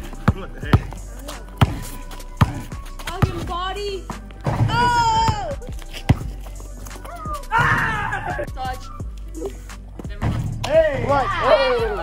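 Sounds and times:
basketball bouncing on concrete: 0:00.0 - 0:07.8.

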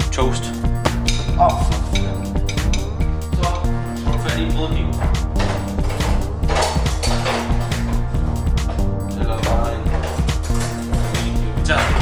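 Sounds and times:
music with heavy bass and beat: 0:00.0 - 0:12.0.

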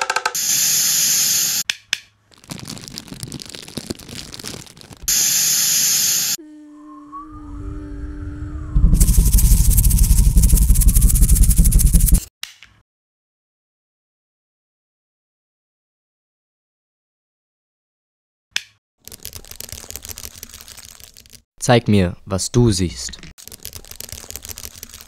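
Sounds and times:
bursts of hissing noise: 0:00.4 - 0:01.6, 0:05.1 - 0:06.4
thin wavering tone: 0:06.4 - 0:10.3
low hum tones: 0:06.4 - 0:12.2
dense rushing noise with rumble: 0:08.7 - 0:12.2.

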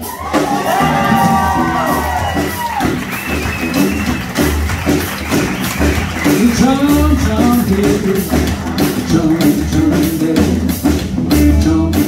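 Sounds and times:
blues rock band playing: 0:00.0 - 0:12.0.

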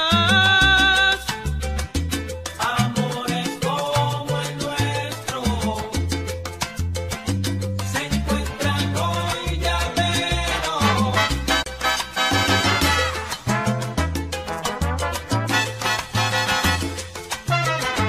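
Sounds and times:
salsa music: 0:00.0 - 0:18.0.

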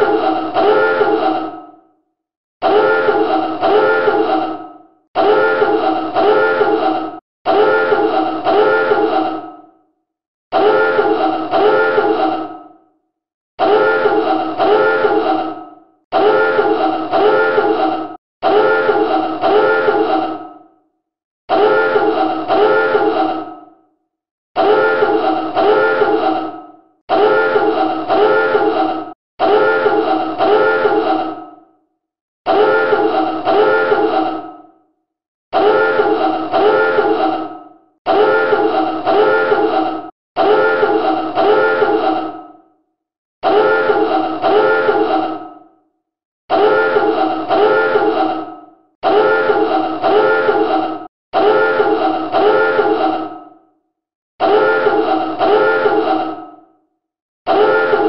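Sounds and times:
pulsing klaxon alarm: 0:00.0 - 0:01.3, 0:02.6 - 0:04.6, 0:05.2 - 0:09.2, 0:10.5 - 0:12.3, 0:13.6 - 0:15.5, 0:16.1 - 0:20.1, 0:21.5 - 0:23.1, 0:24.6 - 0:26.3, 0:27.1 - 0:28.7, 0:29.4 - 0:31.0, 0:32.5 - 0:34.0, 0:35.6 - 0:37.2, 0:38.1 - 0:39.7, 0:40.4 - 0:42.1, 0:43.4 - 0:45.2, 0:46.5 - 0:48.2, 0:49.0 - 0:53.0, 0:54.4 - 0:56.2, 0:57.5 - 0:58.0.

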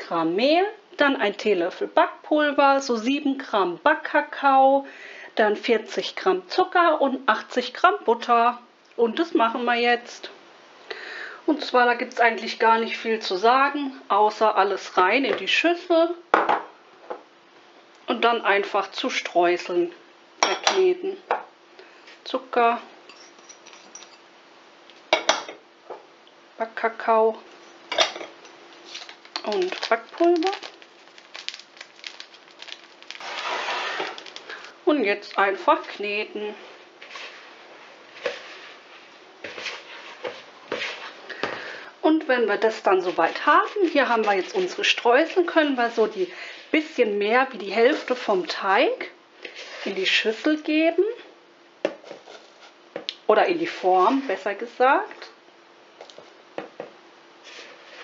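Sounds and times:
scrapes and knocks against bowl: 0:23.1 - 0:24.2
sugar trickling into bowl: 0:28.4 - 0:34.7
crumbs rustling into pan: 0:28.5 - 0:41.8, 0:42.6 - 0:46.9, 0:49.5 - 0:50.4, 0:51.9 - 0:53.0, 0:57.4 - 0:58.0
hands kneading dough: 0:42.5 - 0:45.0.

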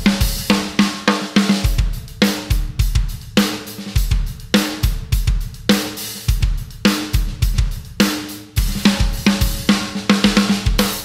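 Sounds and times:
drum kit playing a groove: 0:00.0 - 0:11.0.

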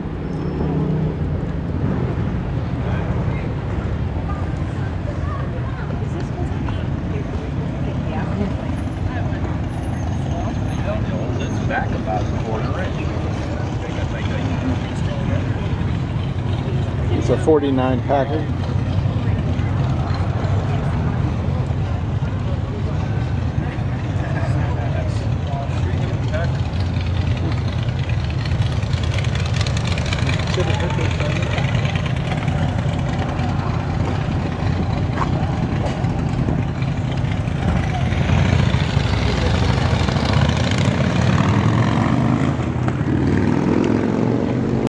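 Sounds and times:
car engines rumbling: 0:00.0 - 0:44.9
people talking: 0:04.2 - 0:15.8, 0:30.4 - 0:36.0.

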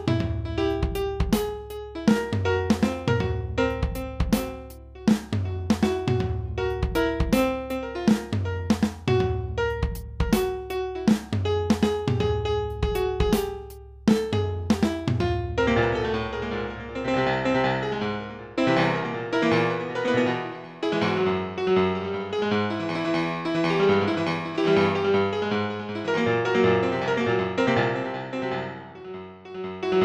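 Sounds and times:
piano music: 0:00.0 - 0:30.0
low bass: 0:08.5 - 0:10.6.

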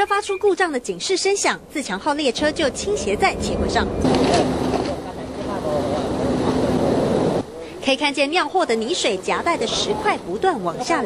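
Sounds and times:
noisy background: 0:00.0 - 0:11.0.

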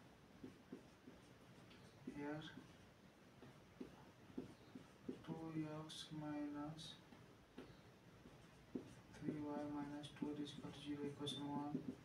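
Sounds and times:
marker scratching on whiteboard: 0:00.3 - 0:05.9, 0:07.5 - 0:12.0.

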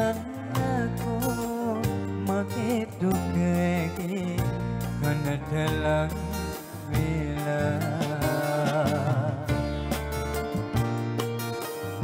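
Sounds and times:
man singing with vibrato: 0:00.0 - 0:09.9
live band playing: 0:00.0 - 0:12.0.

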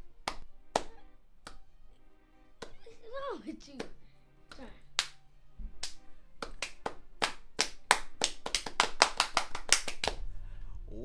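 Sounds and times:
hands clapping: 0:00.2 - 0:01.6, 0:02.6 - 0:02.8, 0:03.6 - 0:05.2, 0:05.8 - 0:10.2.

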